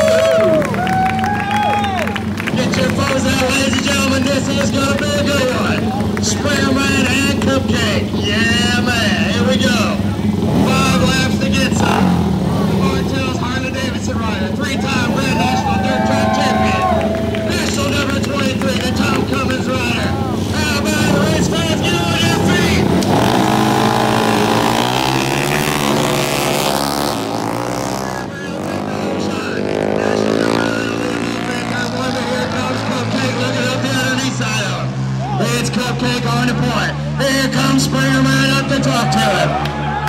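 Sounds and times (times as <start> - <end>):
racing motorcycles accelerating: 0.0 - 40.0.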